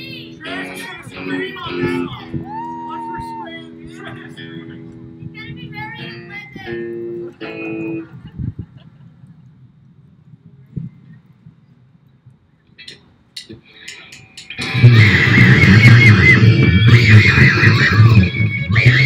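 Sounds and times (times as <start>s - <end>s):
held guitar notes: 0.0s - 8.2s, 12.8s - 19.0s
wavering guitar lead line: 0.0s - 8.3s, 12.8s - 19.0s
live rock band: 13.8s - 19.0s.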